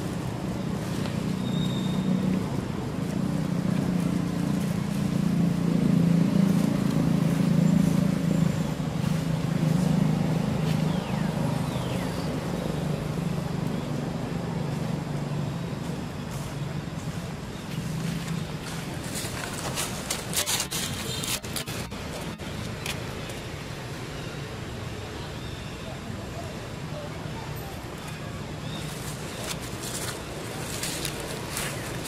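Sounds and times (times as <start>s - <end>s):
vehicle engine rumble passing: 0.0s - 22.8s.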